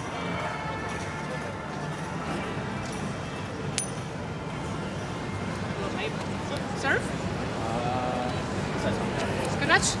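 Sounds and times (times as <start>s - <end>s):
open-air ambience: 0.0s - 10.0s
coin clinking on hard court: 3.7s - 4.1s.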